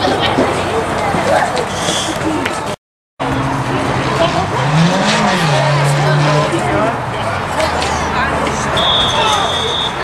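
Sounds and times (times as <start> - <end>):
crowd voices: 0.0 - 10.0
referee's whistle: 8.8 - 10.0.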